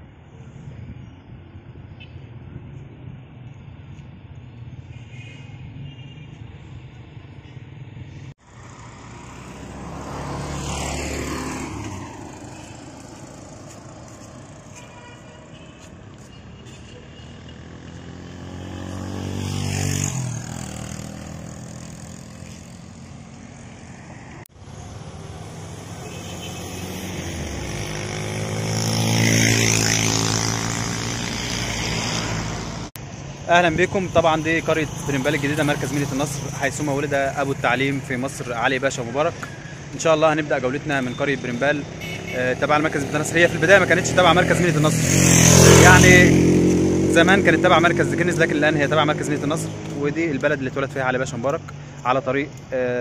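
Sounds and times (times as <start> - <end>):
vehicles driving past: 0.1 - 53.0.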